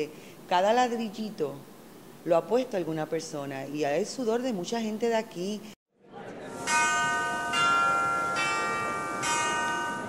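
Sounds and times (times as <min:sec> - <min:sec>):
bell-like chimes: 0:06.7 - 0:10.0.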